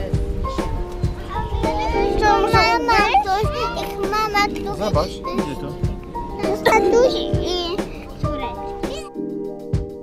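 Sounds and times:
background music with held notes: 0.0s - 10.0s
children calling out and chattering: 0.5s - 9.2s.

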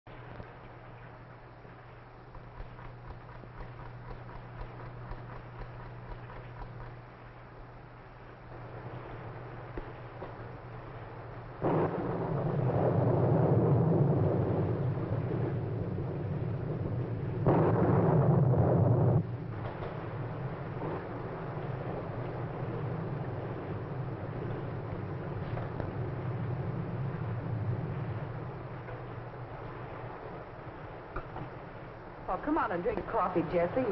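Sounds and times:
film hiss and hum: 0.1s - 33.9s
thunder peal: 11.6s - 29.1s.

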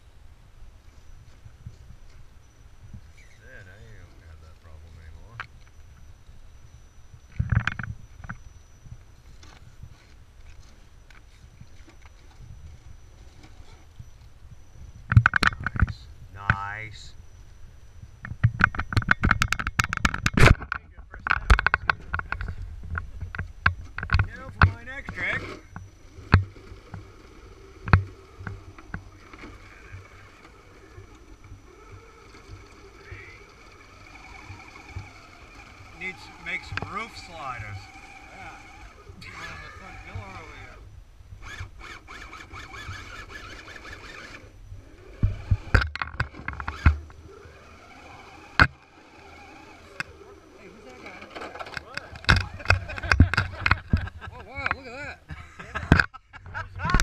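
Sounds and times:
toy car clunking against rock: 15.1s - 16.6s, 18.2s - 40.8s, 41.4s - 54.9s.

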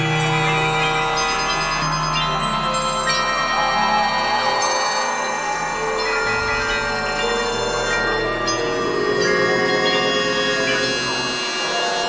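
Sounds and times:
experimental electronic music: 0.0s - 12.0s.

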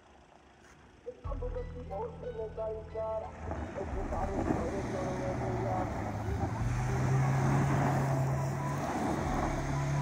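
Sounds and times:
engine revving hard: 4.8s - 10.0s.

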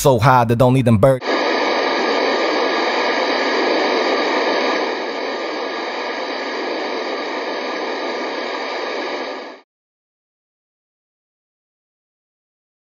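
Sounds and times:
static hiss: 1.0s - 9.6s.

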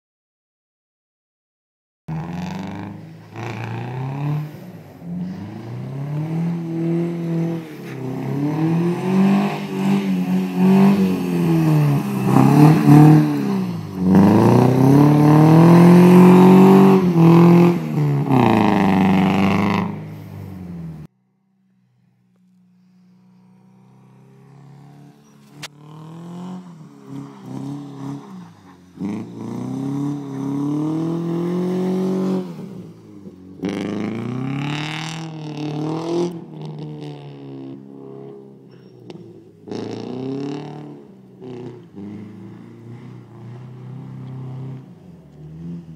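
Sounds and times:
car engine revving: 2.1s - 21.1s, 21.7s - 45.9s.

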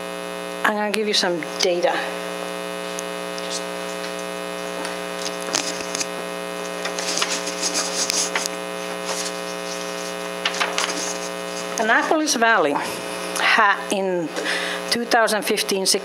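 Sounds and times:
electrical mains hum: 0.0s - 16.0s
light rustles and clicks: 3.0s - 11.8s.

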